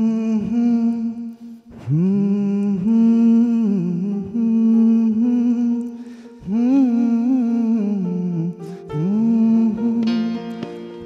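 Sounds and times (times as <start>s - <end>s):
man singing wordless held notes: 0.0s - 11.0s.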